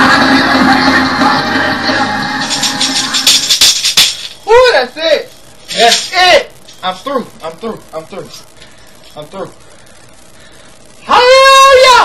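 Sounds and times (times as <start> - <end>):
recorded choir music: 0.0 - 3.4
tambourine struck and shaken: 2.3 - 4.4
man calling out loudly: 11.0 - 12.0.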